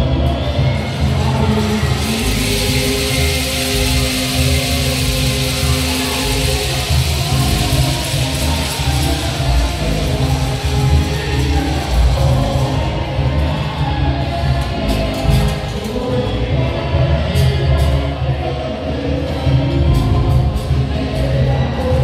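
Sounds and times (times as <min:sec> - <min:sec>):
person singing long notes: 0:00.0 - 0:22.0.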